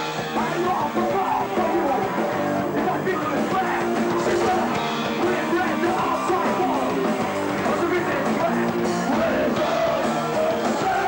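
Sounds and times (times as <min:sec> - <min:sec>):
distorted electric guitar: 0:00.0 - 0:11.0
drums: 0:00.0 - 0:11.0
shouted lead vocal: 0:00.0 - 0:11.0.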